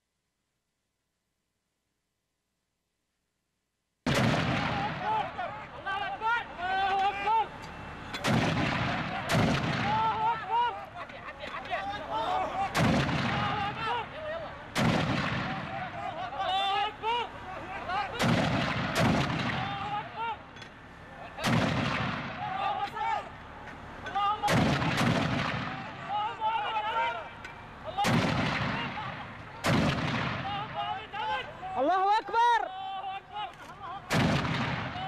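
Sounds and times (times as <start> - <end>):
mortar blasts: 4.1 - 5.4, 8.2 - 10.3, 12.7 - 14.0, 14.7 - 16.1, 18.1 - 20.2, 21.4 - 22.7, 24.4 - 26.1, 27.9 - 30.9, 34.1 - 35.0
men shouting: 4.6 - 8.0, 8.7 - 14.7, 15.5 - 18.3, 19.5 - 21.4, 22.3 - 24.6, 25.6 - 29.7, 30.4 - 34.1.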